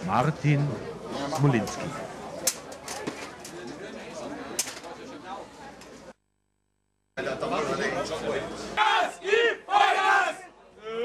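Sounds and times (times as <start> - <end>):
men shouting a cheer: 8.8 - 10.5.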